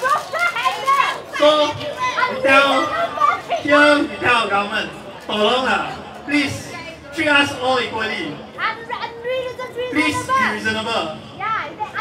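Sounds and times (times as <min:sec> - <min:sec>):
crowd calling out: 0:00.0 - 0:08.8.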